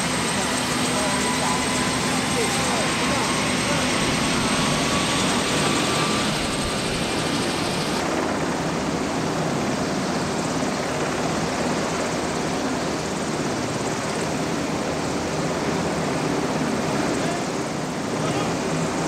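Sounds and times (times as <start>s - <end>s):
high turbine whine: 0.0s - 11.2s
helicopter rotor and engines: 0.0s - 19.0s.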